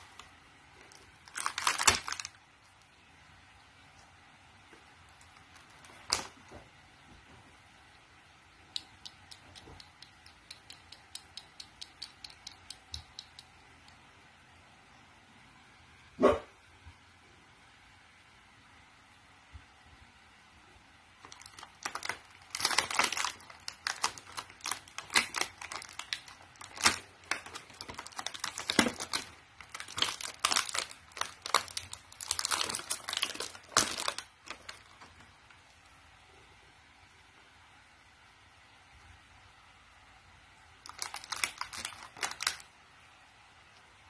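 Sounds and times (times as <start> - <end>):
plastic packaging crinkling: 0.0 - 2.4, 5.1 - 6.5, 21.2 - 35.5, 40.8 - 42.7.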